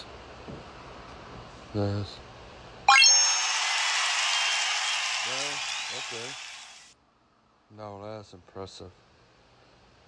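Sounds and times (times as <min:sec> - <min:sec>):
rising chime tones: 0:02.9 - 0:04.0.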